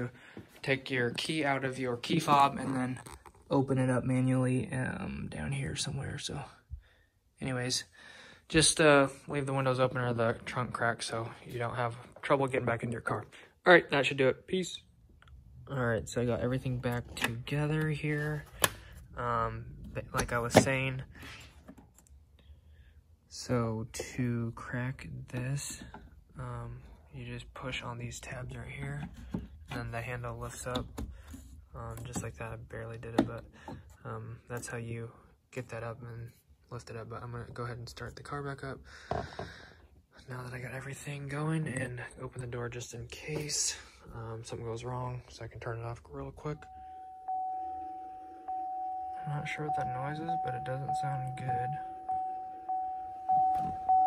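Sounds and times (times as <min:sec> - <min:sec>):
dashboard warning chime: 0:46.4 - 0:54.0.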